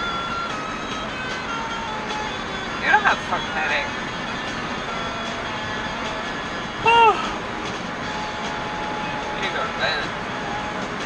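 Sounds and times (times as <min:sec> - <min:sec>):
car road and engine noise: 0:00.0 - 0:11.0.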